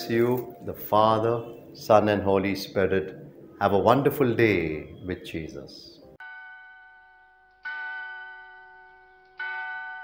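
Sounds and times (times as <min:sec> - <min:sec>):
bell ringing: 0:06.2 - 0:10.0.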